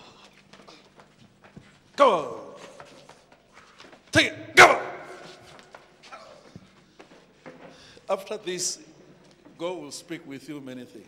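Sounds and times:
loud shouts: 4.2 - 5.4.

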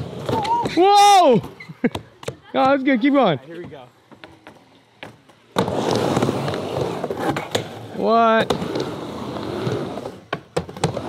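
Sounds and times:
skateboard rolling rumble: 0.0 - 0.8, 4.0 - 11.0.

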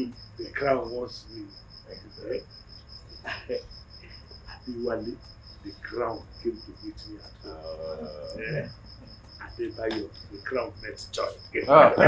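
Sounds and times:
man speaking: 0.0 - 2.4, 3.3 - 3.6, 4.5 - 8.7, 9.4 - 12.0
insect chirping: 0.0 - 12.0.

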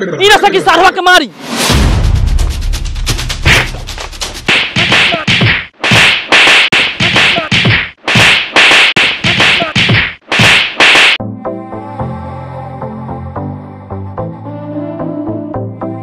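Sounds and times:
loud slap and whack hits: 3.2 - 11.2
background music: 11.2 - 16.0.

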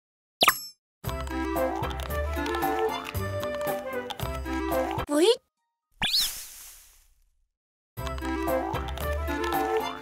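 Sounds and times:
animation background music: 0.4 - 6.2, 8.0 - 10.0.

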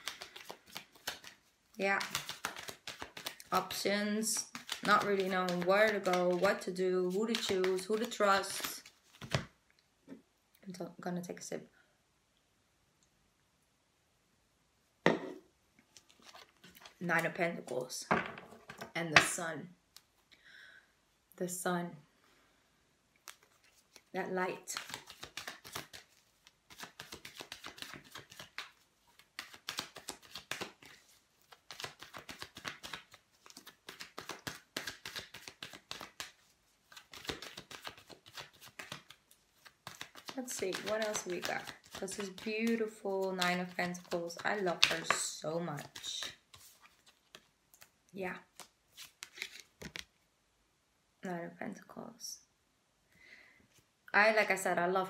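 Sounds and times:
cards being shuffled by hand: 0.0 - 9.6, 15.9 - 17.9, 23.2 - 50.1
knock on tabletop: 15.1 - 15.4.

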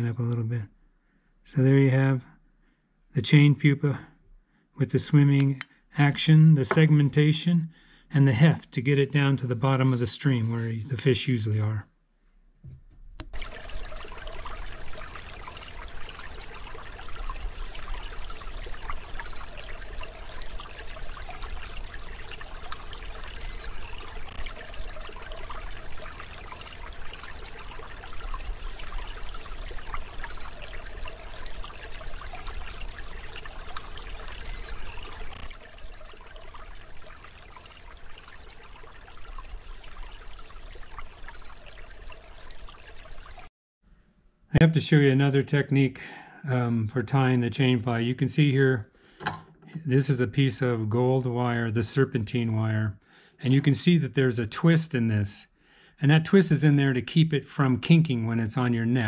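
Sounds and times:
running water: 5.0 - 7.5, 8.2 - 11.8, 13.3 - 43.5.

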